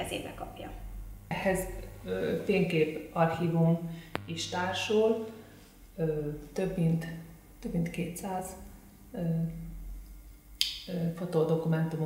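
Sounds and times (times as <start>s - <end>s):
woman speaking: 0.0s - 5.4s, 6.0s - 8.6s, 9.2s - 9.6s, 10.9s - 12.0s.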